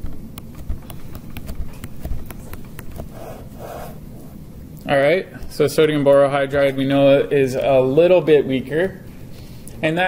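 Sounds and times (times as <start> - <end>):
stylus clicking on tablet screen: 0.3 - 3.9.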